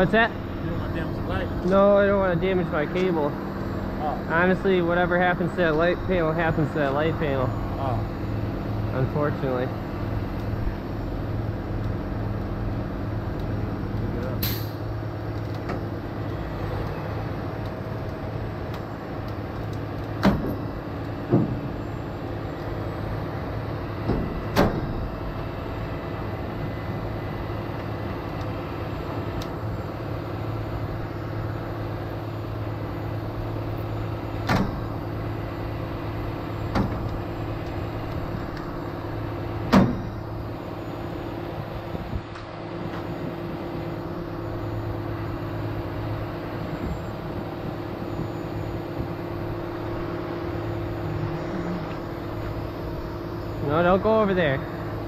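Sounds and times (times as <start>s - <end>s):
diesel engine running: 0.0s - 55.0s.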